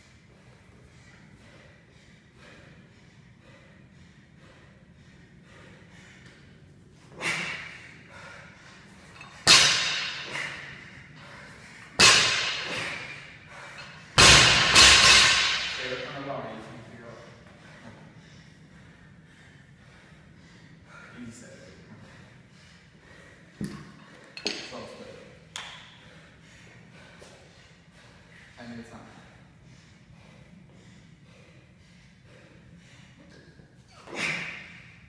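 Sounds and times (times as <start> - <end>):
barbell crashing on rubber floor: 9.4 - 10.7, 12.0 - 13.2, 14.2 - 16.1.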